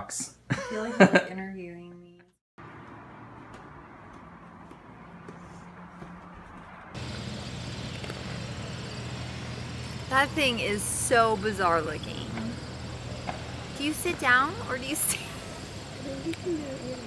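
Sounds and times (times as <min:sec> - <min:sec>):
light footsteps: 0:02.6 - 0:07.0
low engine drone: 0:02.6 - 0:17.0.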